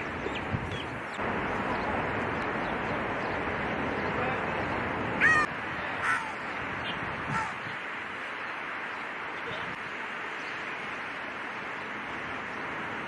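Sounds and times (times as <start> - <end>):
steady outdoor hiss: 0.0 - 13.0.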